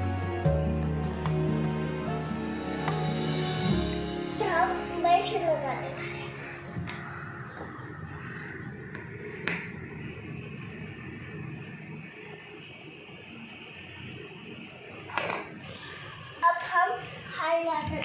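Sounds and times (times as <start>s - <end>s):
faint background music: 0.0s - 18.0s
girl speaking: 4.4s - 6.4s, 16.4s - 18.0s.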